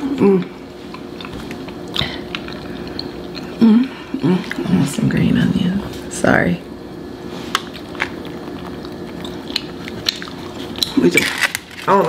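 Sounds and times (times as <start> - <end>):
faint steady hum: 0.0 - 12.0
food clicks and crackles on foil: 10.8 - 12.0.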